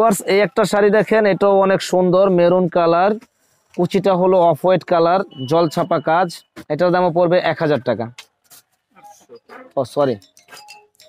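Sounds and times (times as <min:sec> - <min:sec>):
chime-like tones: 0:10.1 - 0:11.0.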